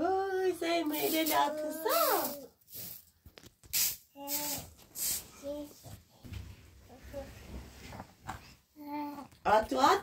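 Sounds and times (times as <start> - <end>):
toddler babbling: 1.0 - 2.5, 8.8 - 9.3.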